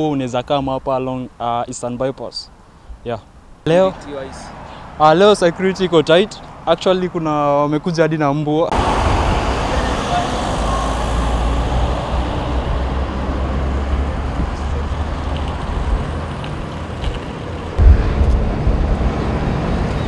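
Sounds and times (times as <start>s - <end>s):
passing vehicles rumbling: 3.7s - 8.1s, 8.7s - 20.0s
loud low thump: 17.8s - 20.0s.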